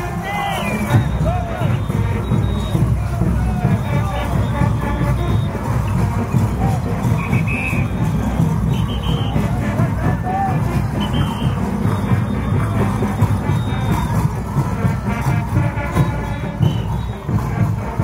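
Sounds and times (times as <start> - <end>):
band music: 0.0 - 18.0
crowd voices: 0.0 - 18.0.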